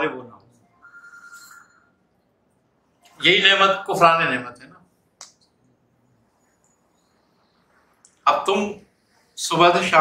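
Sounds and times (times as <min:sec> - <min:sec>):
faint electronic tone: 0:00.6 - 0:02.0.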